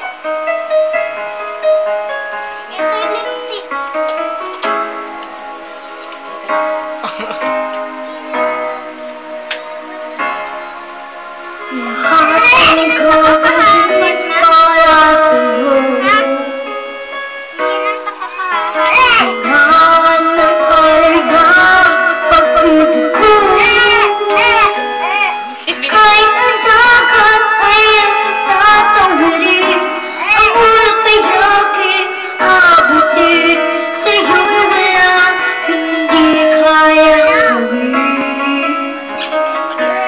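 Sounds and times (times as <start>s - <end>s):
instrumental backing track: 0.0s - 40.0s
keyboard chords: 0.0s - 40.0s
child singing: 2.7s - 3.8s, 11.8s - 16.8s, 17.6s - 38.9s.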